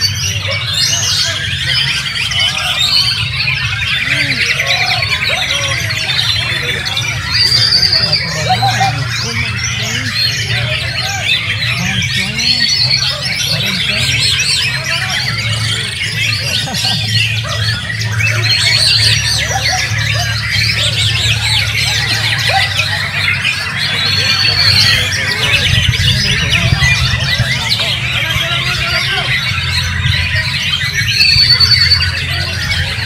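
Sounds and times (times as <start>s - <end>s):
birds singing: 0.0s - 33.0s.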